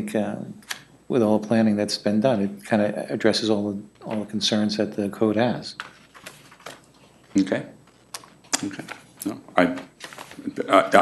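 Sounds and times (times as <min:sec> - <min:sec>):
man saying okay: 0:10.4 - 0:11.0.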